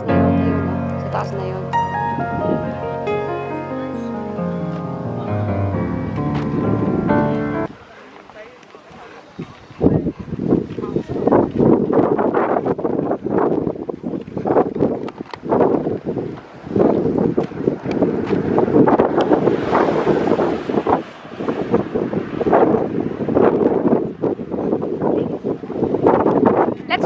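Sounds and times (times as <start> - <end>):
wind buffeting microphone: 0.0 - 27.0
car passing close by: 16.4 - 24.6.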